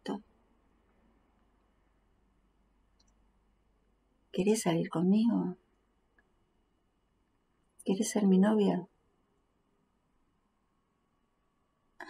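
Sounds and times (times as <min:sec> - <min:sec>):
faint click: 0:02.9 - 0:03.2.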